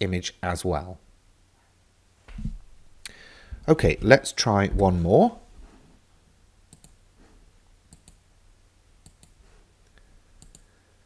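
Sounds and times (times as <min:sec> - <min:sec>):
faint computer mouse clicks: 0:06.7 - 0:07.0, 0:07.9 - 0:08.2, 0:09.0 - 0:09.4, 0:10.4 - 0:10.7.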